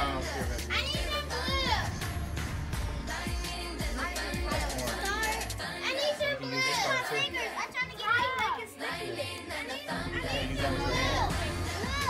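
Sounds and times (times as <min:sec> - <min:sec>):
background music: 0:00.0 - 0:12.0
children talking and calling out: 0:00.6 - 0:02.0, 0:04.0 - 0:12.0.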